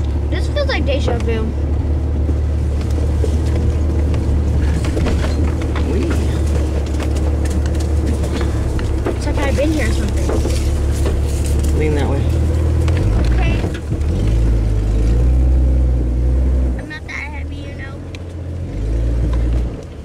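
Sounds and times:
vehicle engine running at low revs: 0.0 - 20.0.

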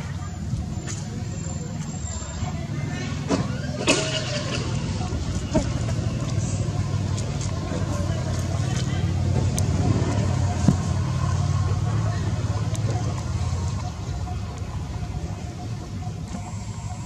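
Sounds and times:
motor engine humming: 4.6 - 17.0.

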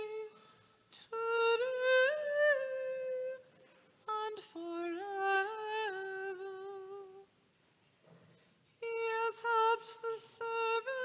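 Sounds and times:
woman singing hymn melody: 0.0 - 7.3, 8.8 - 11.0.

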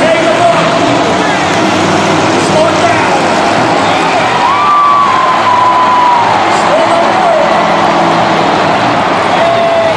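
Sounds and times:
monster truck engines running: 0.0 - 9.9
stadium crowd din: 0.0 - 9.9.

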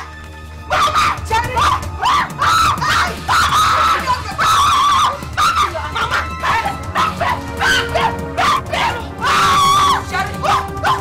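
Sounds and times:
background music: 0.0 - 11.0.

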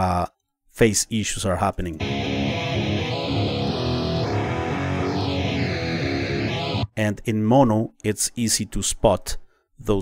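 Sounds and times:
electric guitar with flanging: 2.0 - 6.9.

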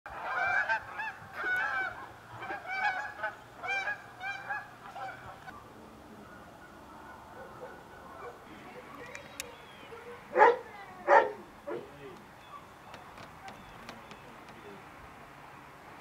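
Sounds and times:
geese honking: 0.1 - 14.8.

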